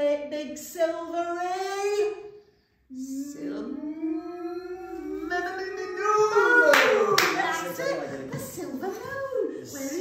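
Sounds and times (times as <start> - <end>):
hand claps: 6.6 - 7.7.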